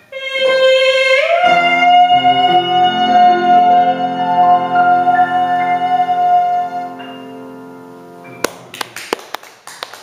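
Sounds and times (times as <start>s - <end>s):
piano chord: 0.1s - 8.7s
audience clapping: 8.4s - 10.0s.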